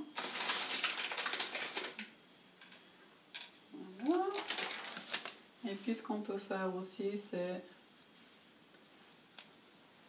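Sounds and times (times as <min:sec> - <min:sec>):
paper bag rustling: 0:00.0 - 0:02.1, 0:04.0 - 0:05.4
woman speaking: 0:03.8 - 0:04.5, 0:05.6 - 0:07.8.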